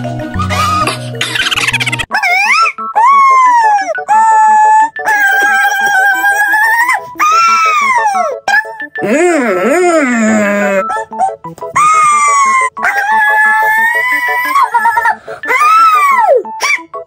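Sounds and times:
music: 0.0 - 17.0
high-pitched voice wailing: 1.5 - 16.9.

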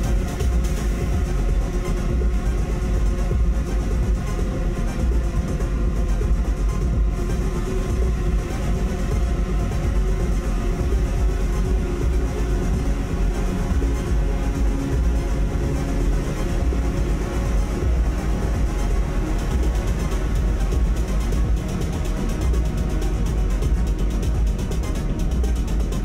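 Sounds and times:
electronic noise drone: 0.0 - 26.0
sub-bass rumble: 0.0 - 26.0.

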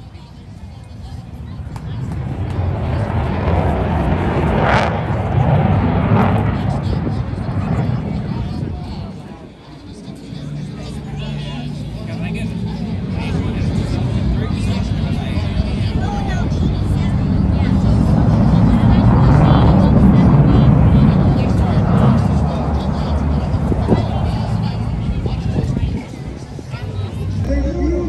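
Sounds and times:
crowd voices: 0.0 - 28.0
fighter jet flying low: 0.1 - 28.0.

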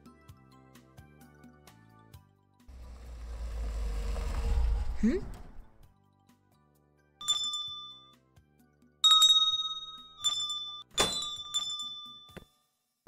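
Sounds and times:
shop door bell jingling: 7.2 - 8.2, 9.0 - 12.5.

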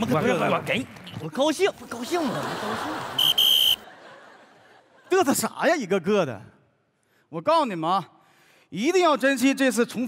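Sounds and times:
pea whistle blasts: 3.2 - 3.8.

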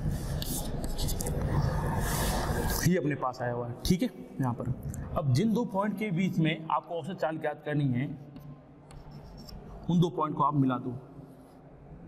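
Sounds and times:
chalk scratching on chalkboard: 8.9 - 9.8.

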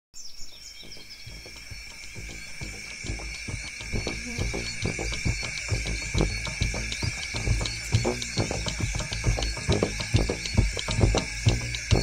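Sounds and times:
bird chirps: 0.2 - 12.0
high insect drone: 0.4 - 12.0
music with low beats: 1.2 - 12.0.

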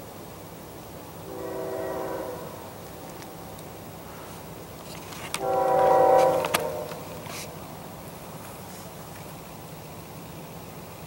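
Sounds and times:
distant locomotive horn: 1.2 - 4.4, 5.1 - 7.7.

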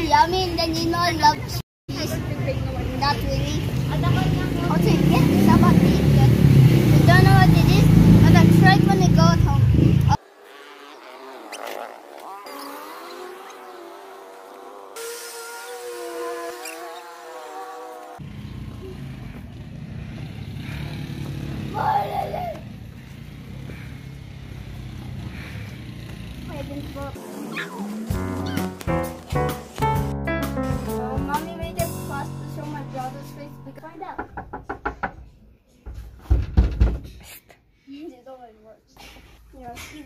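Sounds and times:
music with steady beat: 28.0 - 33.7.

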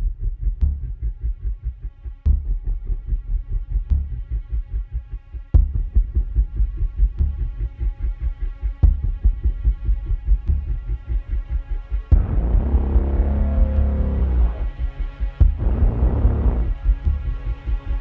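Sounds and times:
low throbbing pulse: 0.0 - 18.0
synthesized drone: 12.1 - 17.1.

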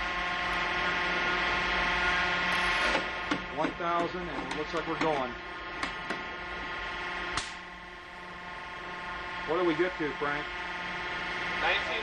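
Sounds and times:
hydraulic unit humming: 0.0 - 12.0
strap snapping with sharp crack: 7.4 - 7.6.

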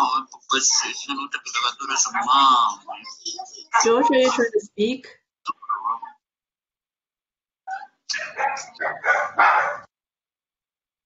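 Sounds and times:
dog barking: 7.7 - 9.9.

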